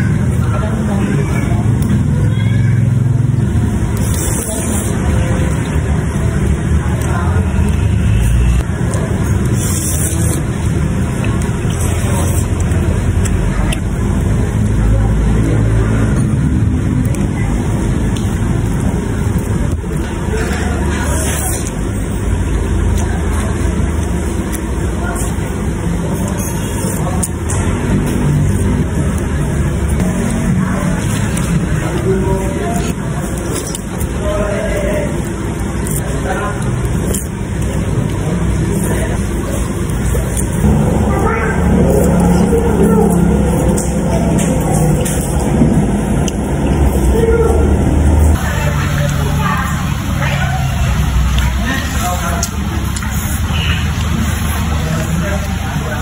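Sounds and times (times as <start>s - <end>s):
indistinct voices: 0.0s - 56.0s
low background rumble: 37.1s - 48.6s.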